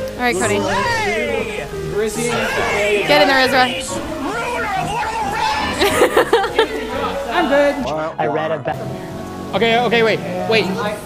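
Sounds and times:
young people chattering excitedly: 0:00.2 - 0:07.9.

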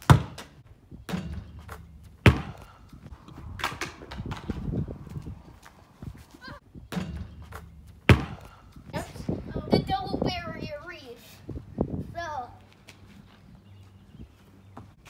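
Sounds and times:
basketball bouncing on concrete: 0:00.0 - 0:02.8, 0:06.9 - 0:08.6.

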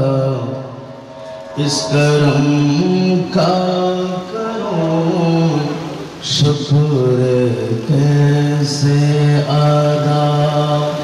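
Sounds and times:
man chanting long notes: 0:00.0 - 0:11.0.

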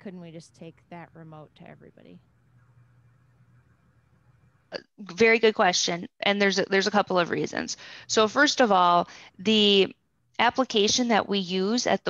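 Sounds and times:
person speaking: 0:00.0 - 0:02.2
faint low hum: 0:00.0 - 0:12.0.

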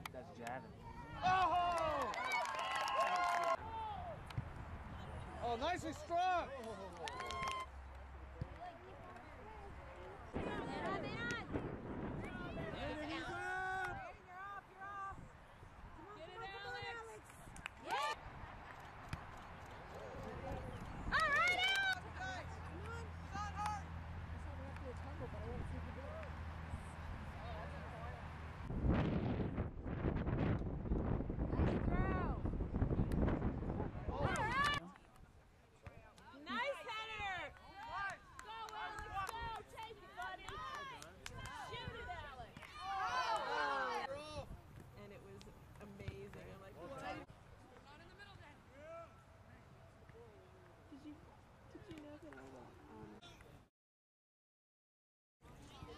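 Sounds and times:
players and spectators shouting: 0:12.4 - 0:15.1, 0:36.5 - 0:44.4.

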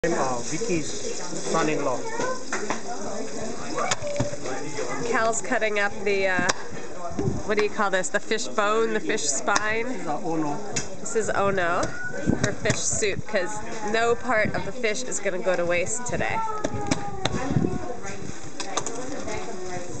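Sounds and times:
people talking: 0:00.0 - 0:20.0.

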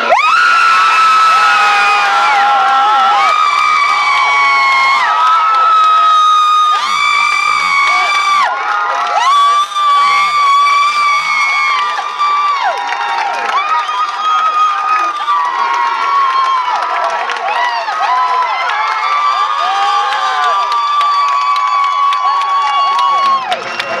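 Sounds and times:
high-pitched screams of joy: 0:00.0 - 0:23.6
crowd cheering: 0:00.0 - 0:24.0.

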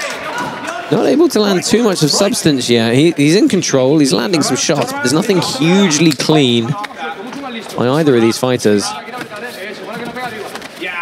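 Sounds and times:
commentary: 0:00.0 - 0:11.0.

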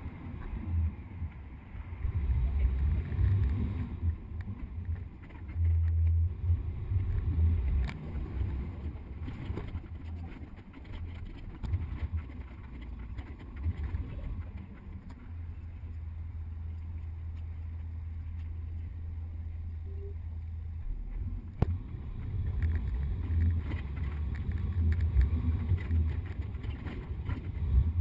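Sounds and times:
bus engine rumble: 0:00.0 - 0:28.0.

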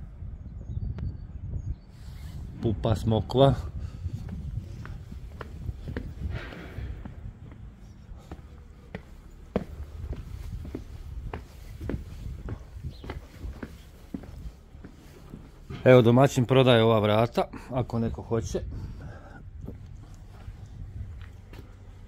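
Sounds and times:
footsteps on concrete: 0:03.8 - 0:16.1, 0:19.6 - 0:22.0
low steady rumble: 0:17.9 - 0:22.0.

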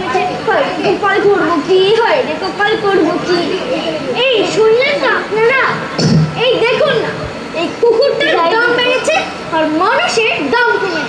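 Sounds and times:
girl speaking on stage: 0:00.0 - 0:11.0.

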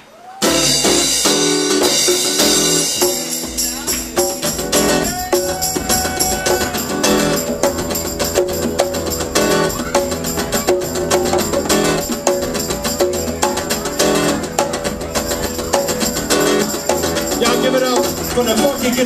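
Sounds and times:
congas: 0:00.4 - 0:19.0
drum kit: 0:00.4 - 0:19.0
strummed acoustic guitar: 0:00.4 - 0:19.0.

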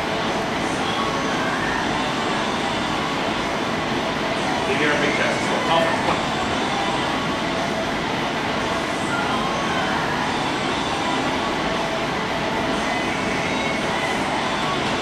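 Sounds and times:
steady rushing noise: 0:00.0 - 0:15.0.

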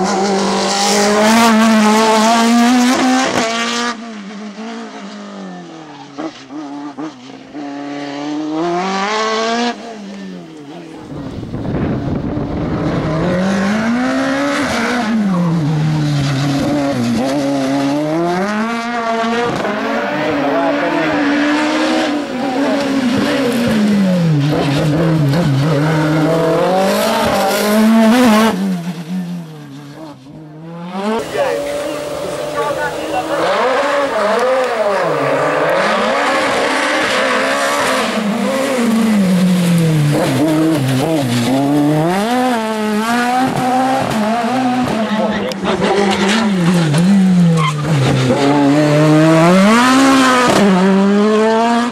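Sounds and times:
race car engine revving: 0:00.0 - 0:51.9.

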